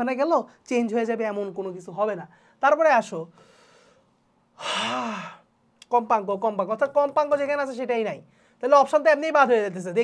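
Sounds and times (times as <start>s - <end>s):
faint breath: 2.3s - 2.6s, 3.3s - 5.4s, 8.3s - 8.6s
man gasping: 3.3s - 5.5s.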